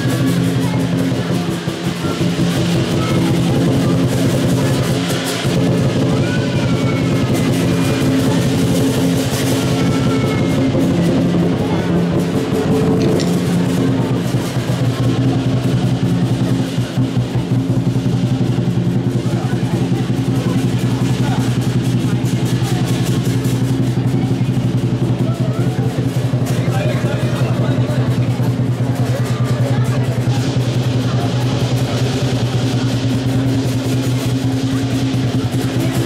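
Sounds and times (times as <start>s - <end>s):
cymbals clashing: 0.0s - 36.0s
drum beaten in fast rhythm: 0.0s - 36.0s.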